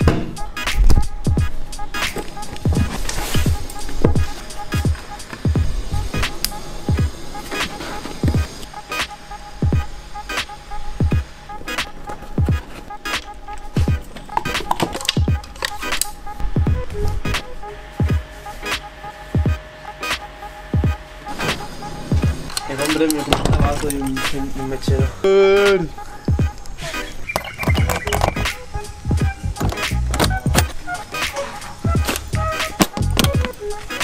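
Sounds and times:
background beat music: 0:00.0 - 0:34.0.

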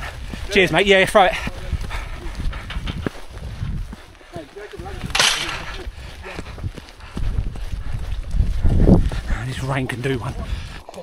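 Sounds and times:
wind on microphone: 0:00.0 - 0:04.2, 0:04.8 - 0:10.8
boots on muddy track: 0:00.0 - 0:11.0.

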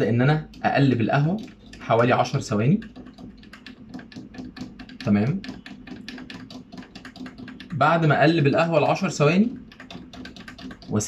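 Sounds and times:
teaspoon clicking against metal pot: 0:00.4 - 0:08.0, 0:08.9 - 0:11.0.

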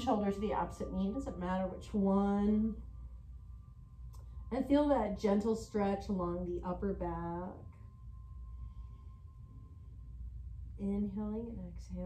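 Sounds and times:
faint high-pitched whine: 0:00.0 - 0:12.0
steady low hum: 0:00.0 - 0:12.0.

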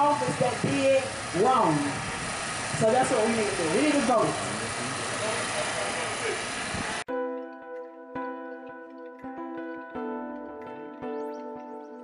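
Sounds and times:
outdoor background noise: 0:00.0 - 0:07.1.

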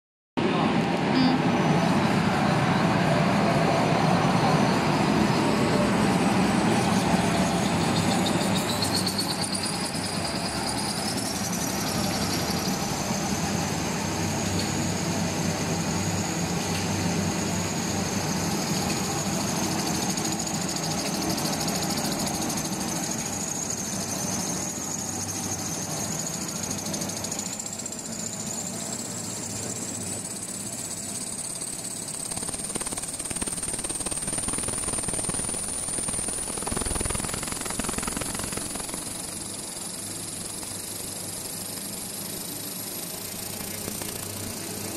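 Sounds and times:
high machine whine: 0:00.4 - 0:44.9
machine mechanical din: 0:31.2 - 0:44.9.

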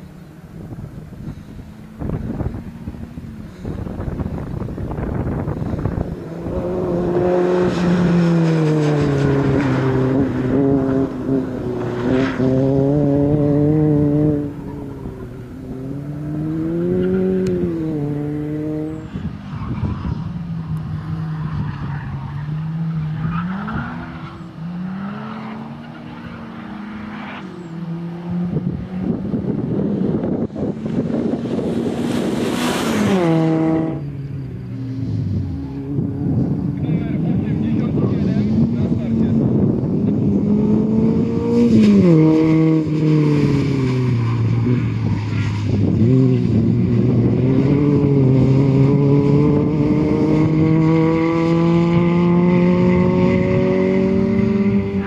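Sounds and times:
car engine revving: 0:00.0 - 0:55.0
car passing by: 0:00.6 - 0:55.0.

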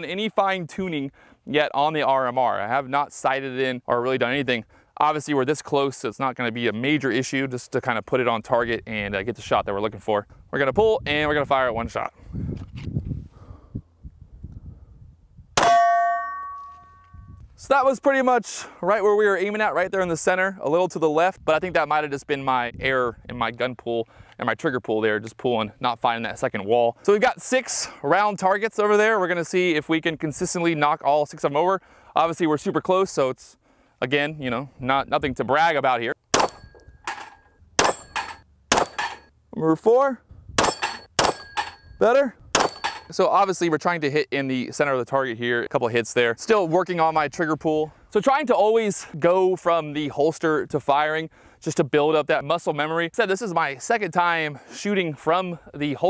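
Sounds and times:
steel target ringing: 0:15.6 - 0:17.2, 0:36.4 - 0:39.3, 0:40.6 - 0:42.0, 0:42.6 - 0:43.1
pistol shot: 0:36.3 - 0:36.7, 0:37.8 - 0:38.1, 0:38.7 - 0:39.1, 0:40.6 - 0:41.6, 0:42.6 - 0:42.9.

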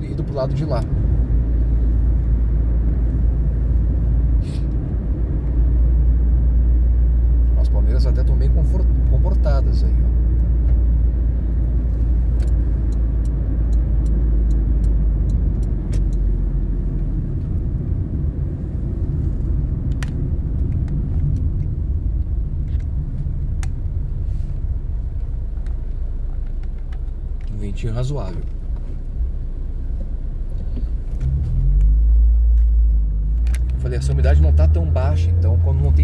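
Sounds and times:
car road rumble: 0:00.0 - 0:36.0.

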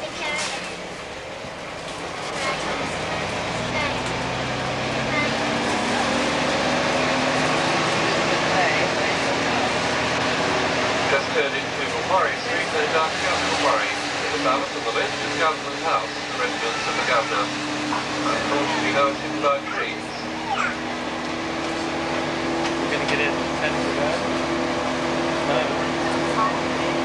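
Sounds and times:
bus engine accelerating: 0:00.0 - 0:27.0
voices: 0:11.0 - 0:21.1.

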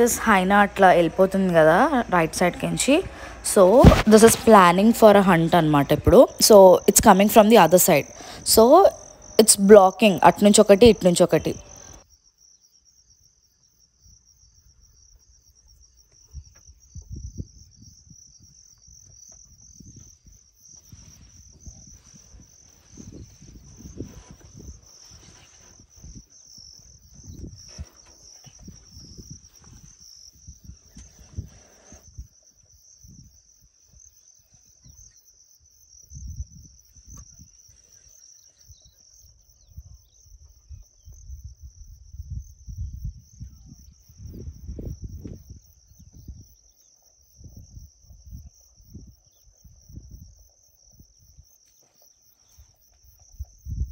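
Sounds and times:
insects trilling: 0:00.0 - 0:53.9.

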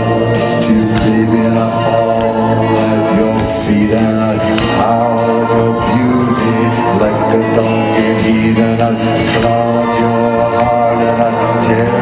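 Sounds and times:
live concert music with singing: 0:00.0 - 0:12.0.

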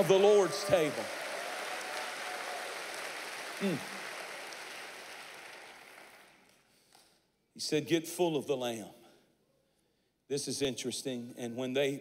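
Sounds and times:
crowd applauding: 0:00.0 - 0:06.6.

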